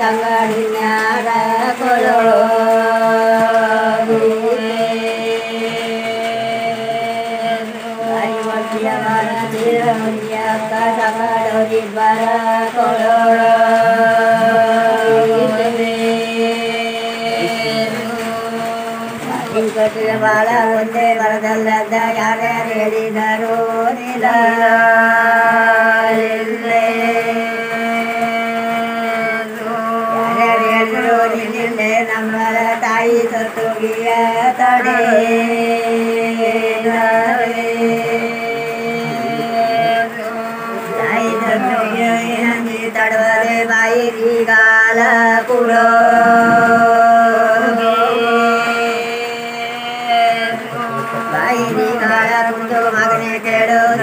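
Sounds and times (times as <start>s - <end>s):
women singing chant-like song: 0.0s - 54.0s.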